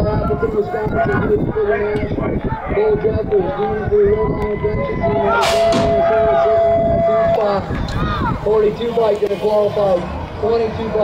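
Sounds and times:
starting gate dropping with bang: 5.3s - 6.2s.

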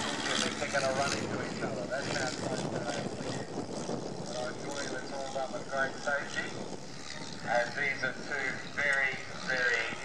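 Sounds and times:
propeller planes droning overhead: 0.0s - 10.0s.

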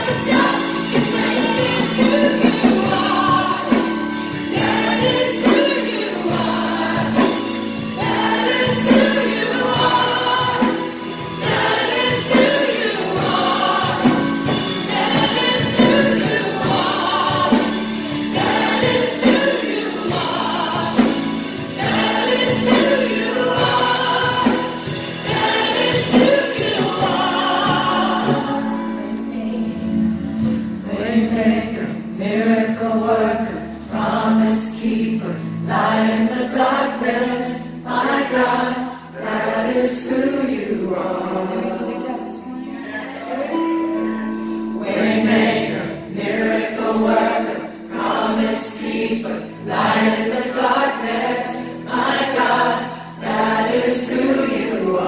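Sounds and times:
congregation singing: 0.0s - 55.0s
singers on microphones: 0.0s - 55.0s.

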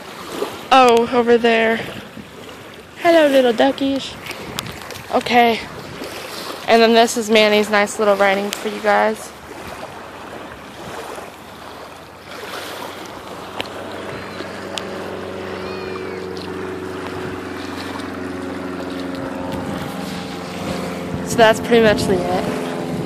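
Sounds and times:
motorboat engine running: 0.0s - 23.0s
small waves washing onto sand: 0.0s - 23.0s
wind: 0.0s - 23.0s.

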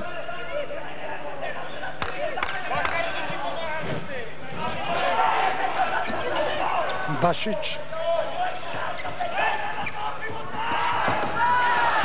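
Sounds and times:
people shouting: 4.6s - 7.2s, 7.9s - 12.0s.

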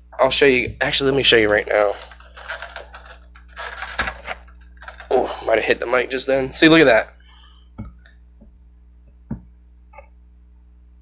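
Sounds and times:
handling rustles: 1.5s - 6.1s.

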